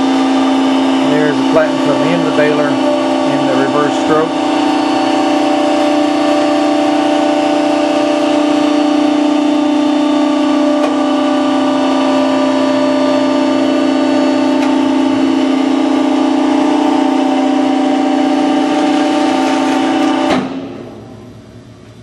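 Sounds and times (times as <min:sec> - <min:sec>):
hydraulic power unit humming: 0:00.0 - 0:22.0.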